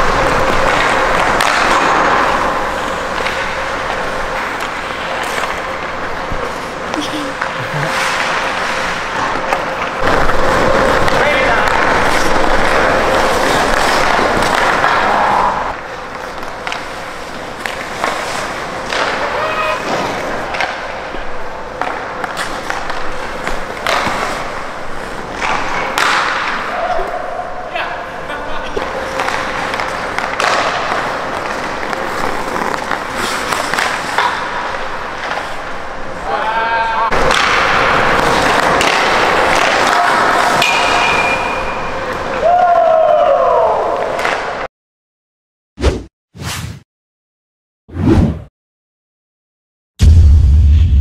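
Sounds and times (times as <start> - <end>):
skate scrape: 0.0 - 27.2, 28.2 - 36.4, 37.1 - 42.4
skates carving ice: 0.0 - 44.7.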